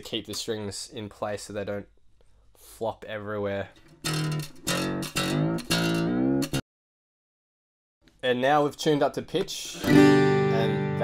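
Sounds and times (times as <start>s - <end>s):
guitar string plucked while tuning: 3.9s - 6.6s.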